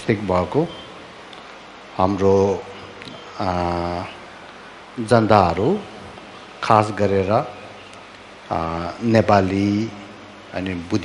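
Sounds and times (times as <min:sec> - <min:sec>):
man speaking slowly: 0:02.0 - 0:04.3, 0:08.5 - 0:11.0.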